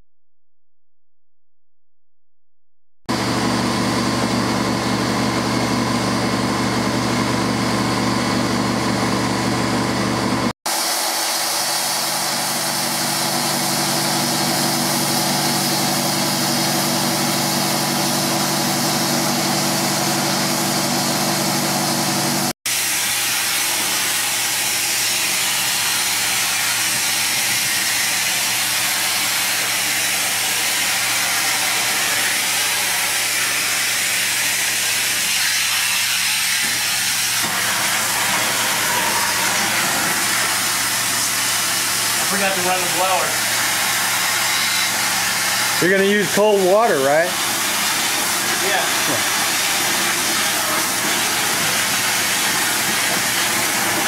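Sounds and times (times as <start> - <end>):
cleaning machine engine running: 3.1 - 54.0
water spraying and vacuuming hiss: 10.7 - 54.0.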